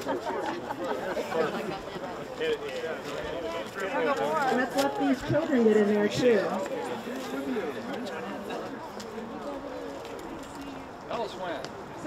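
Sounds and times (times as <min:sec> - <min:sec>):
quiet chatter of people: 0:00.0 - 0:12.0.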